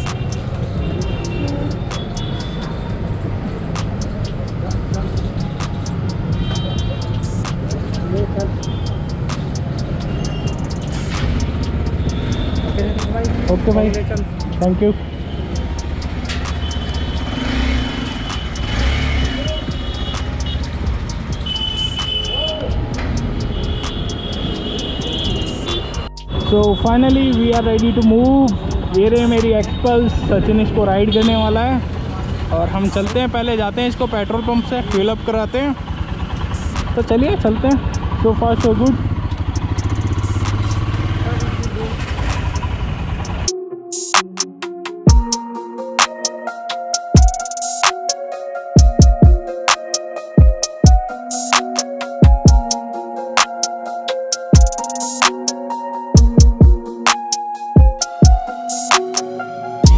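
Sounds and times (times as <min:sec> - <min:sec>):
electronic music with a beat: 0:00.0 - 0:29.9, 0:36.6 - 0:37.0, 0:38.6 - 0:59.9
steady high tone: 0:05.2 - 0:17.4, 0:43.2 - 0:59.9
motorcycle engine running: 0:15.6 - 0:22.9, 0:35.8 - 0:43.5.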